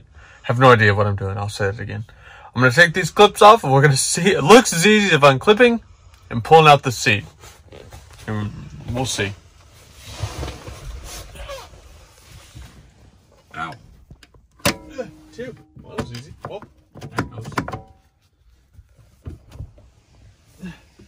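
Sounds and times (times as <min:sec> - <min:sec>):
metal latch clicks and clacks: 0:14.2 - 0:15.0, 0:15.8 - 0:18.0.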